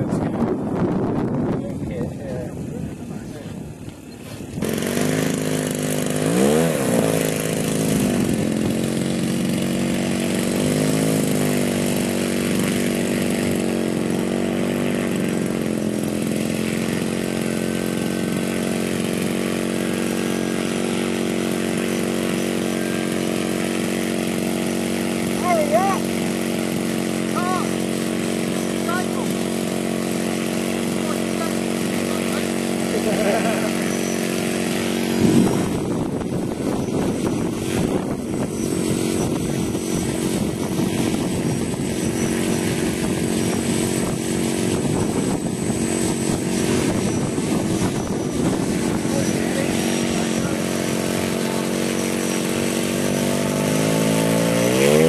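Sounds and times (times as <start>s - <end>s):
model airplane engine idling: 0.0s - 55.0s.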